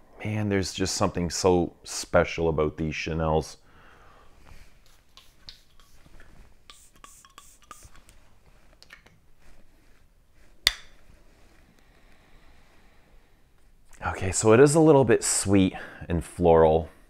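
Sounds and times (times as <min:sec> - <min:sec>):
perfume atomizer spraying: 0:04.8 - 0:08.2.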